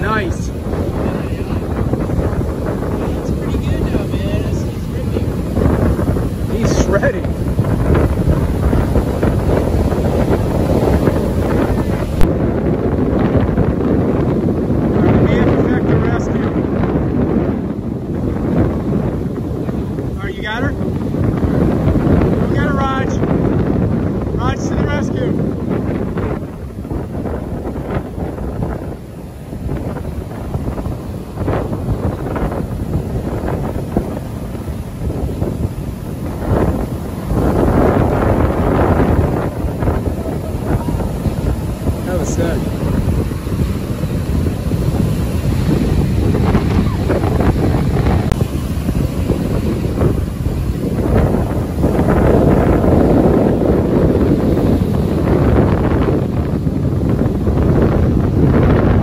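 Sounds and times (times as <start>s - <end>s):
surf breaking: 0.0s - 59.0s
wind buffeting microphone: 0.0s - 59.0s.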